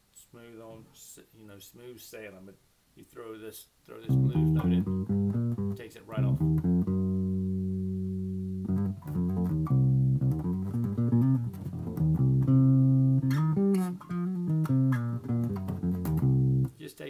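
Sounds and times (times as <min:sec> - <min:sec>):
electric bass guitar played fingerstyle: 0:04.0 - 0:16.8.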